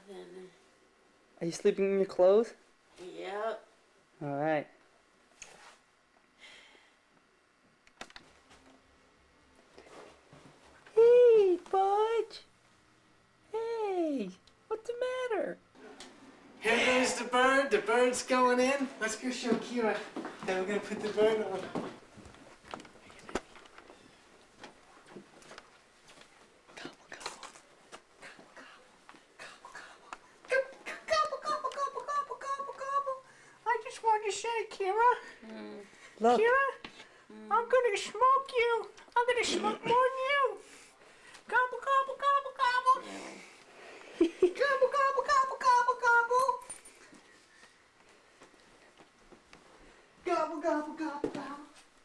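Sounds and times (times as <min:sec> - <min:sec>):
soft footsteps: 0:18.8 - 0:27.0, 0:46.8 - 0:52.0
faint whispering: 0:26.7 - 0:27.6, 0:28.2 - 0:30.2.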